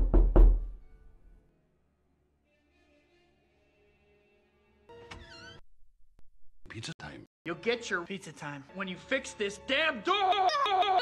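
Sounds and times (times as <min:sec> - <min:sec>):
loud knocks on a door: 0:00.0 - 0:00.8.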